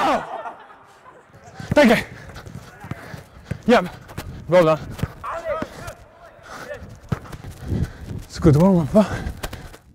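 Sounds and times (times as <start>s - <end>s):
faint shouts of players: 5.2s - 6.8s.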